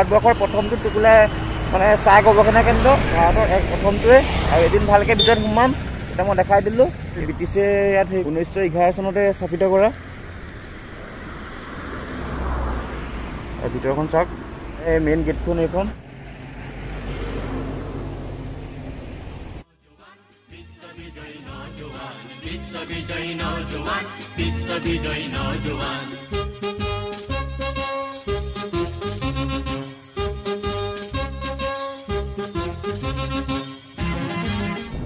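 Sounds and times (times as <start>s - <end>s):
person talking: 0.0s - 10.0s, 13.6s - 16.0s
road traffic rumble: 0.0s - 19.6s, 23.4s - 35.0s
vehicle passing by: 0.0s - 19.6s.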